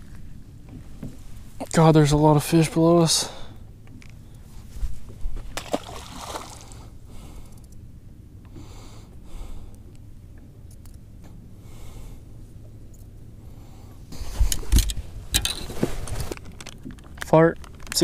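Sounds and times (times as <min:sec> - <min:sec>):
fish splashing into water: 0:05.6 - 0:06.8.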